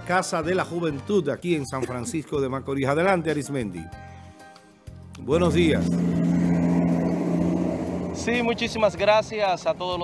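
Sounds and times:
vehicle engine running: 0:05.4 - 0:10.0.

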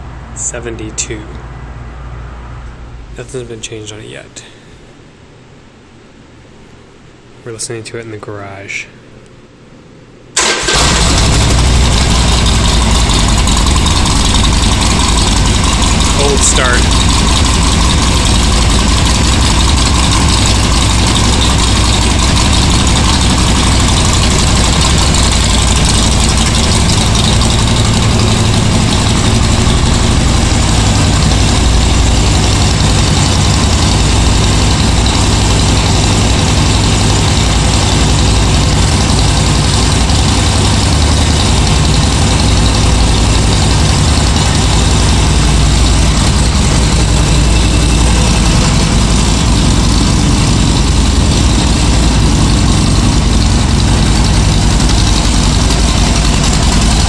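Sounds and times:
motorcycle engine idling: 0:10.8 - 0:57.0.

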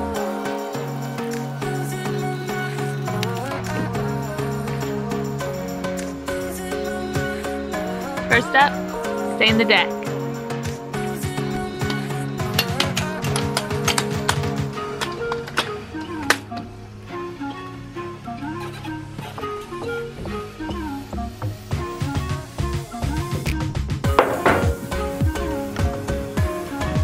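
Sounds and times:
melodic background music with beat: 0:00.0 - 0:27.0.

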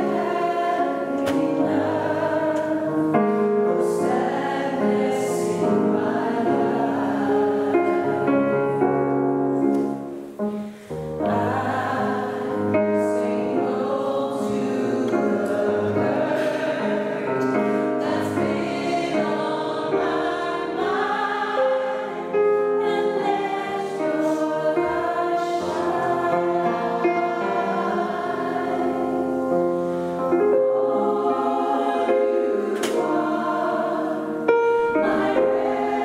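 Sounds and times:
mixed choir singing gospel song: 0:00.0 - 0:09.1, 0:10.7 - 0:36.0
piano accompaniment: 0:00.0 - 0:36.0.

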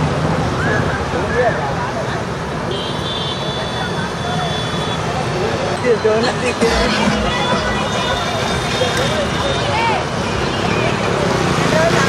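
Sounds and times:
crowd chatter: 0:03.4 - 0:12.0
motorbikes and scooters passing: 0:05.1 - 0:12.0
steady high-pitched tone: 0:06.3 - 0:09.3.

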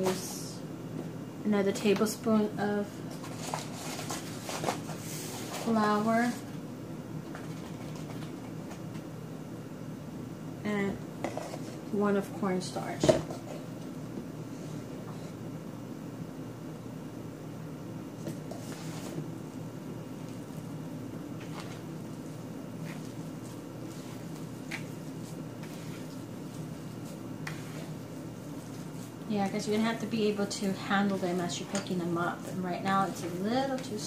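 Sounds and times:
hands kneading soft dough: 0:18.1 - 0:34.0.

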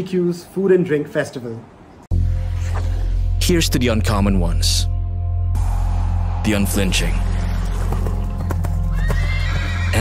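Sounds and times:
horse whinnying: 0:08.8 - 0:10.0.

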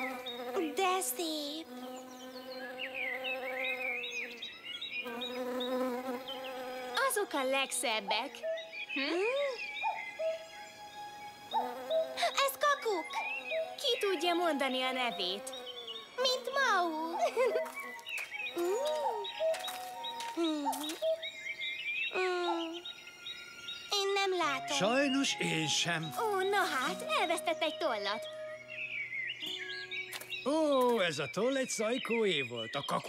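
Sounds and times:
high chirping bird calls: 0:00.0 - 0:33.0
background music: 0:04.4 - 0:32.4.

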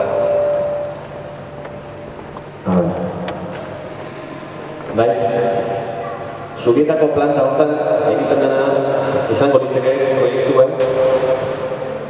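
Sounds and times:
hall background noise: 0:00.0 - 0:12.0.

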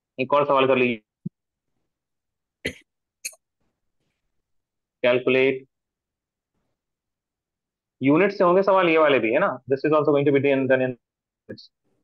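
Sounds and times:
person coughing: 0:02.6 - 0:02.9.

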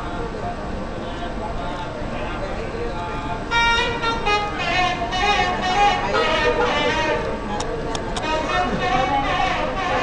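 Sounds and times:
reed wind instrument melody: 0:03.4 - 0:07.6, 0:08.2 - 0:10.0.

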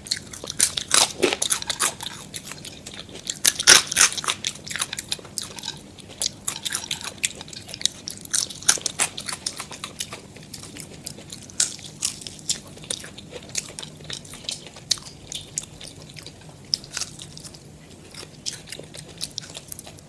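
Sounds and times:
crunchy chewing of fried food: 0:00.0 - 0:20.0.

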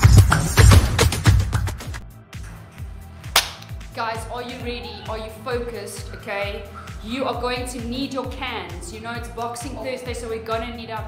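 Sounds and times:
dance music with bass-drum beat: 0:00.0 - 0:02.0.

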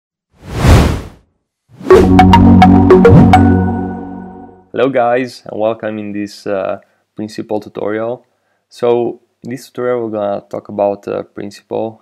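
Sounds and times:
whoosh: 0:00.4 - 0:01.2.

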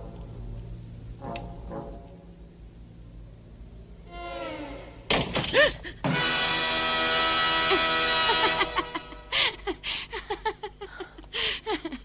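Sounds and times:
sustained music chord: 0:04.0 - 0:05.1, 0:06.1 - 0:09.3.

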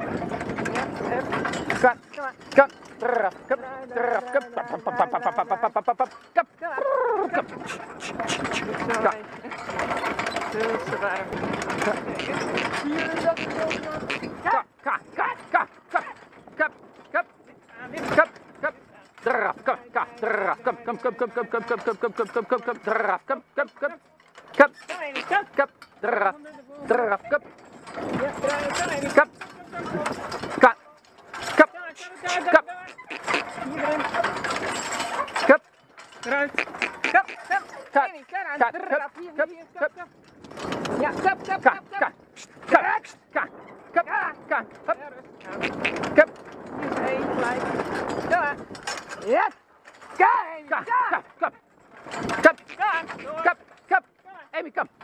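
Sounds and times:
carriage wheels and hooves on sand: 0:00.0 - 0:55.0
sharp hoof and harness sounds: 0:00.0 - 0:55.0
man calling to horse: 0:00.7 - 0:09.3, 0:10.4 - 0:27.5, 0:28.1 - 0:40.2, 0:41.0 - 0:47.6, 0:49.2 - 0:51.7, 0:52.3 - 0:55.0.

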